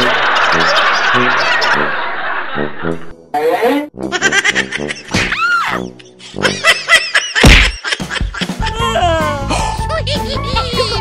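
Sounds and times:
laughter: 0.0s - 3.0s, 4.1s - 8.7s, 9.6s - 11.0s.

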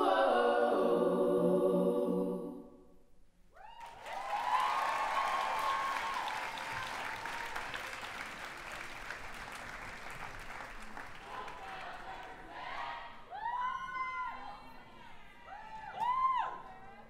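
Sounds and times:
cheering whoops and shouts: 3.6s - 7.7s, 13.3s - 14.8s, 15.4s - 16.9s
audience clapping: 3.8s - 12.5s.

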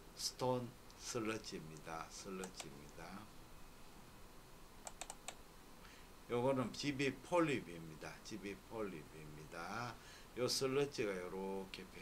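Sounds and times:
faint computer input clicks: 1.7s - 2.8s, 4.8s - 5.4s.

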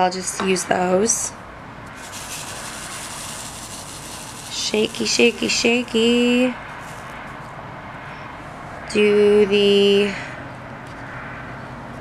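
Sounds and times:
room noise hiss: 1.8s - 7.5s.

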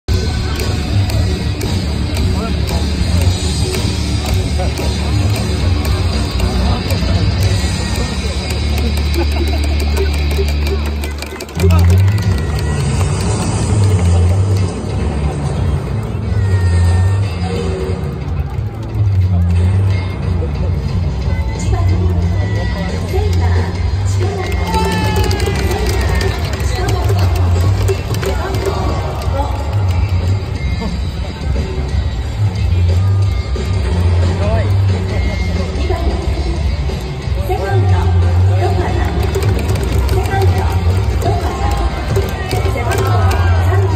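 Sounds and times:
crowd voices: 0.0s - 43.9s
loud music over loudspeakers: 0.0s - 43.9s.

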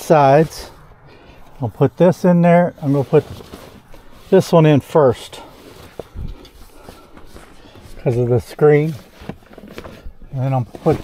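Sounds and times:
fabric rustling: 2.6s - 11.0s.

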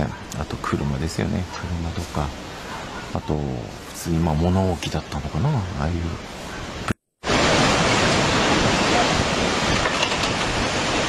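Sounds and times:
seawater rushing with debris: 7.2s - 11.0s.

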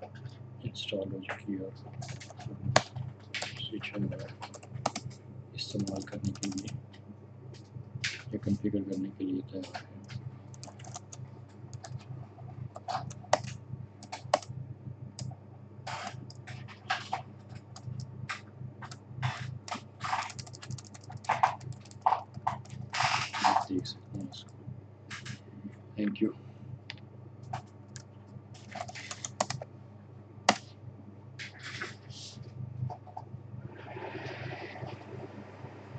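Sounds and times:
low steady hum: 0.0s - 35.9s
keyboard typing: 1.4s - 6.8s, 9.6s - 12.1s, 12.7s - 14.5s, 15.1s - 25.4s, 27.4s - 29.7s.

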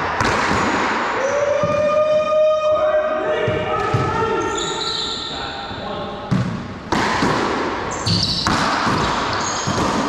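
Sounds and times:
ball smacking paddle and walls: 0.0s - 2.2s, 6.3s - 10.0s
sneakers squeaking on wood floor: 3.3s - 6.9s, 7.8s - 10.0s.

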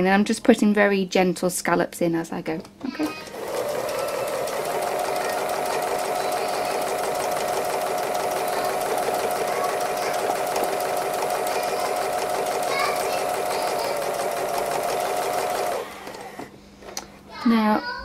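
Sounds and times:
sewing machine running: 3.0s - 16.5s.

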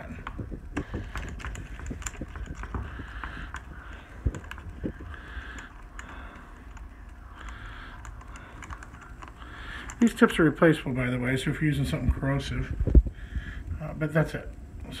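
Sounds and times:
small irregular clicks: 0.0s - 10.2s
fingers rubbing on plastic: 0.1s - 10.1s.

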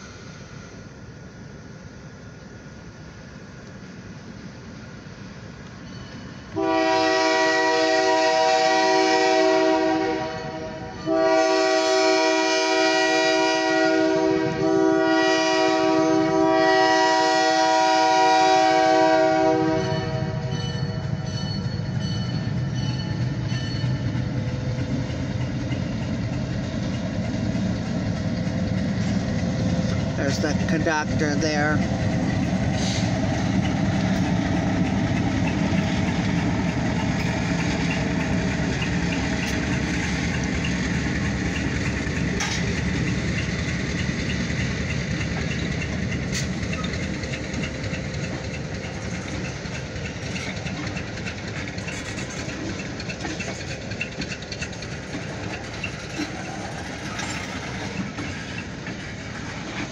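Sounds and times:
train air horn: 6.5s - 21.0s, 32.8s - 33.2s
diesel engine rumbling: 18.9s - 59.9s.

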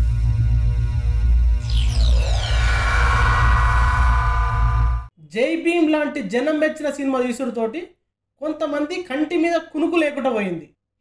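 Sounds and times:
deep bass drone: 1.4s - 5.1s
falling electronic sweep: 1.6s - 5.1s.

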